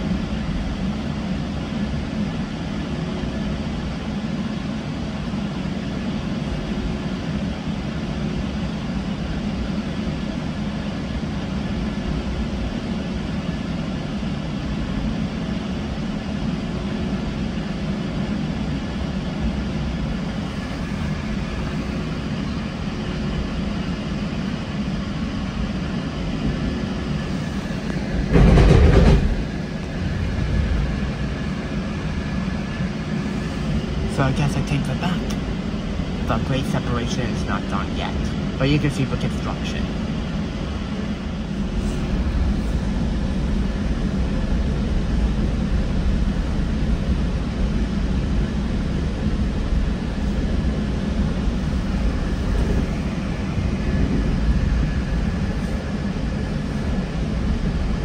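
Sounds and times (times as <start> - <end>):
train car rumbling on track: 0.0 - 58.0
loud burst of noise: 27.2 - 35.2.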